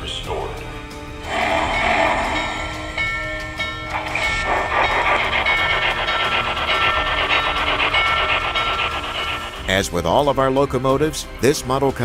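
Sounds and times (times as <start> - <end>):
steady high tones: 1.2 - 10.2
model steam locomotive running: 1.2 - 10.9.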